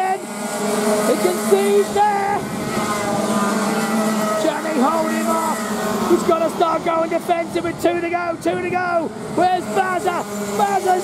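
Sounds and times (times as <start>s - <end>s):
kart engines racing: 0.0s - 11.0s
person speaking: 1.0s - 2.6s.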